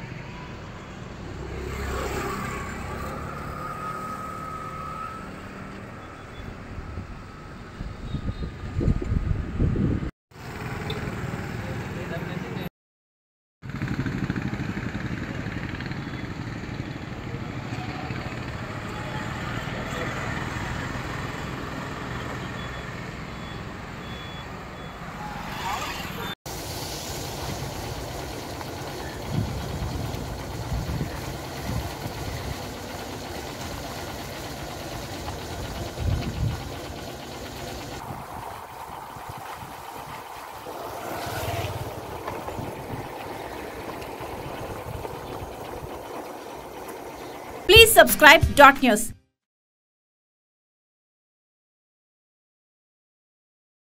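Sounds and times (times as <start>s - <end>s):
vehicle engines passing: 0.0s - 8.0s, 10.4s - 12.6s, 13.7s - 26.4s, 27.2s - 47.7s
vehicle on rough road: 0.0s - 12.7s, 13.7s - 47.7s.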